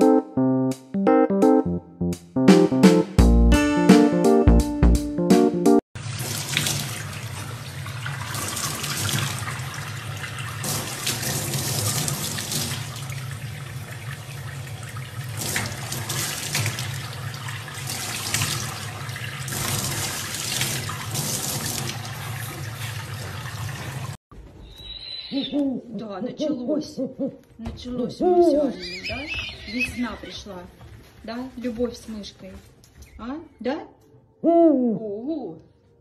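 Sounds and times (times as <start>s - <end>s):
tap water splashing into sink: 6.0s - 24.2s.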